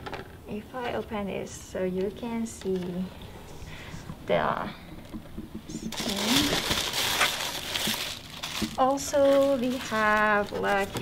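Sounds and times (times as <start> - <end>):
tissue paper rustling: 5.7 - 11.0.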